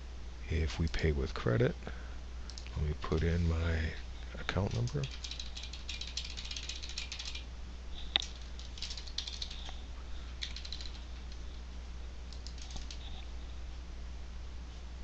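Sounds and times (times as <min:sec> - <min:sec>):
low steady hum: 0:00.0 - 0:15.0
keyboard typing: 0:04.6 - 0:07.5, 0:08.2 - 0:09.8, 0:10.4 - 0:11.6, 0:12.3 - 0:13.2.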